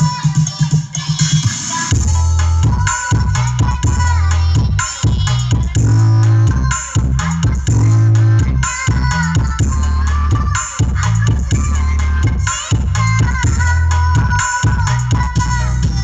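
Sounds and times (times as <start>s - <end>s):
loud electronic dance music: 0.0s - 16.0s.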